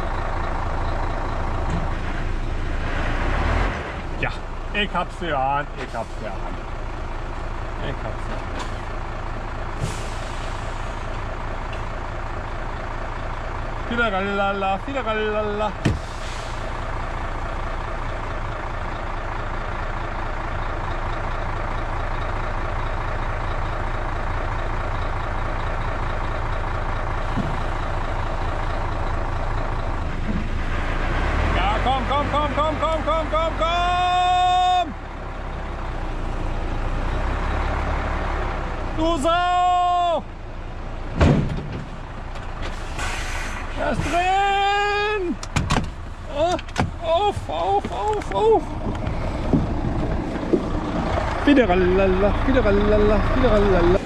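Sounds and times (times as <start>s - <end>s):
truck diesel engine running: 0.0s - 54.0s.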